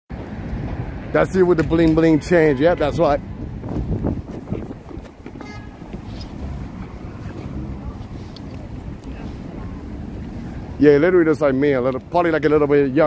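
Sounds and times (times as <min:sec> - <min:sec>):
street traffic rumble: 0:00.1 - 0:13.0
wind on microphone: 0:02.6 - 0:10.8.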